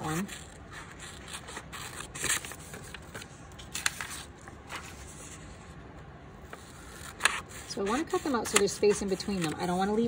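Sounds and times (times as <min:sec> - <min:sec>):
paper rustling: 0:00.0 - 0:05.8, 0:06.5 - 0:10.0
scissors snipping paper: 0:06.5 - 0:10.0.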